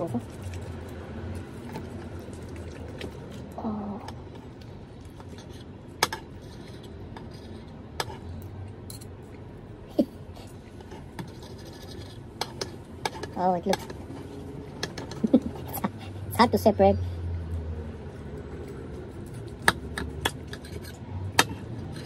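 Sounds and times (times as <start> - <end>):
knife and fork scraping a plate: 10.8 - 13.9, 19.3 - 22.0.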